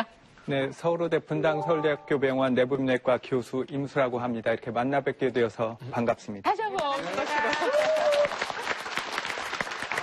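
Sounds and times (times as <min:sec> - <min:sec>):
audience applauding: 0:06.8 - 0:10.0.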